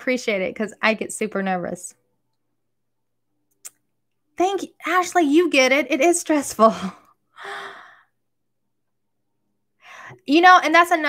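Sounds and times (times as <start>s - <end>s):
woman's breathy exhale: 7.4s - 8.1s.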